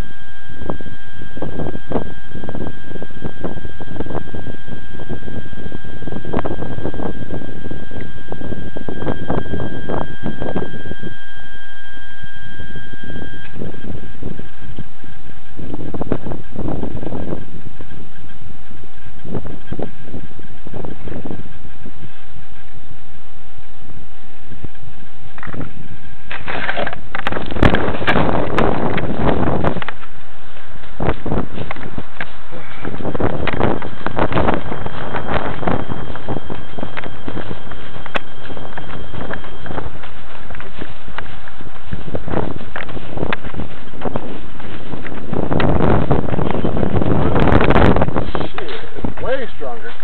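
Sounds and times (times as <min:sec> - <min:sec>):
faint high whine: 0:00.0 - 0:50.0
rush of noise: 0:00.0 - 0:50.0
wind buffeting microphone: 0:00.0 - 0:50.0.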